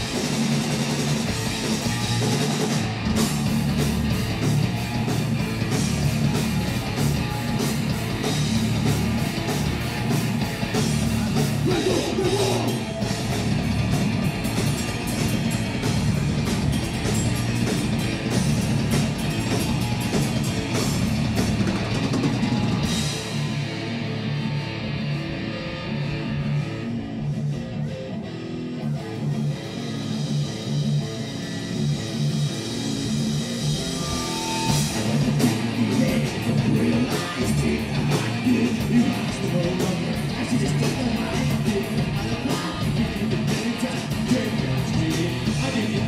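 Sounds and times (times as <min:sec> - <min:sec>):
electric guitar riff: 0:00.0 - 0:46.0
rock band playing: 0:00.0 - 0:46.0.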